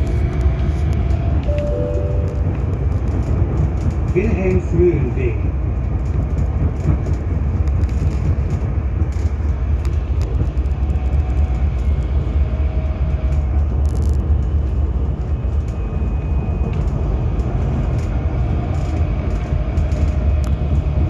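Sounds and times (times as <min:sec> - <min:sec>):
tram ride rumble: 0:00.0 - 0:21.0.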